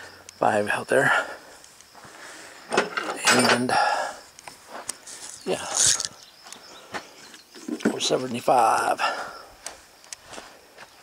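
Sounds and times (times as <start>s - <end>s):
man speaking: 0.4s - 1.3s, 5.4s - 6.1s, 7.8s - 9.2s.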